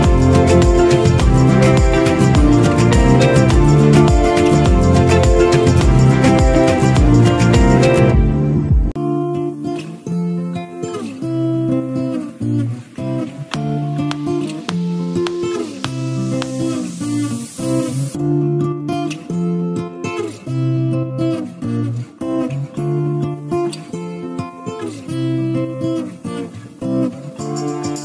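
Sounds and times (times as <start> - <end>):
acoustic guitar plucking: 0.0 - 28.0.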